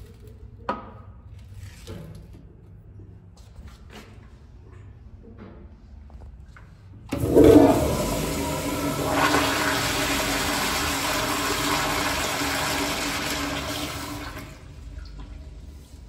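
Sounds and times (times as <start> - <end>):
toilet flushing: 7.1 - 16.0.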